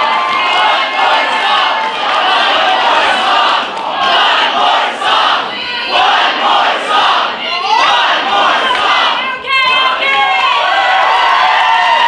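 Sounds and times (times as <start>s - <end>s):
young people shouting and cheering: 0.0s - 12.0s
rising whoop: 10.6s - 12.0s.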